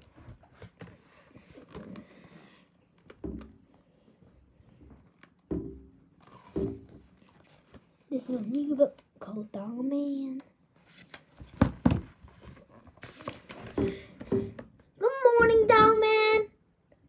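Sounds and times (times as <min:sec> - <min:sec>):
book rustling and shuffling: 0:00.0 - 0:02.3, 0:06.2 - 0:09.0, 0:10.8 - 0:14.6.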